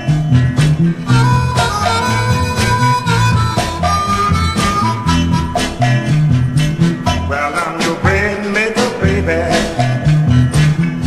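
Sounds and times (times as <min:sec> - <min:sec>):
drums bass and guitar beat: 0:00.0 - 0:11.0
harmonica long notes: 0:01.1 - 0:06.2.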